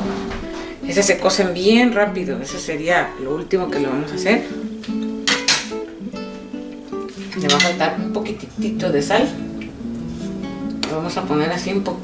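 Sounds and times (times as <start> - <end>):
acoustic guitar strumming chords: 0.0 - 12.0.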